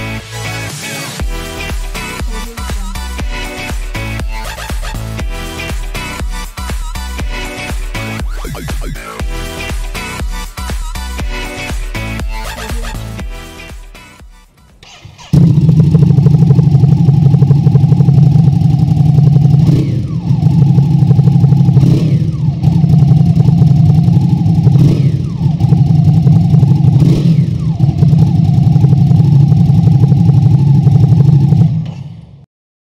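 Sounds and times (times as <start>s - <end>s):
motorcycle engine revving: 0.0s - 6.4s, 14.8s - 32.4s.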